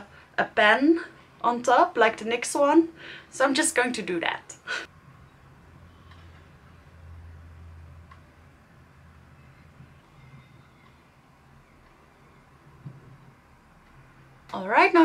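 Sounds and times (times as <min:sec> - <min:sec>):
faint low hum: 0:04.9 - 0:15.0.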